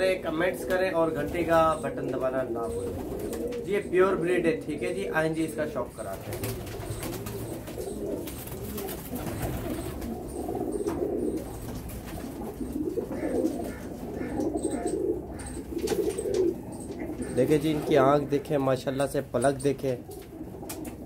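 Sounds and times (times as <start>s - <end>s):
pigeons cooing: 0.0s - 21.0s.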